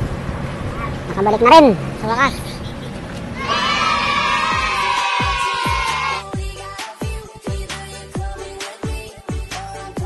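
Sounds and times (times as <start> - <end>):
group cheering: 3.4 - 6.3.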